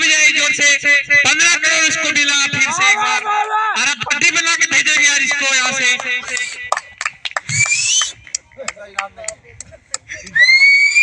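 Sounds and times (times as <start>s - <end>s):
scattered handclaps: 4.6s - 10.1s
rising whistle from crowd: 7.5s - 8.2s, 10.4s - 11.0s.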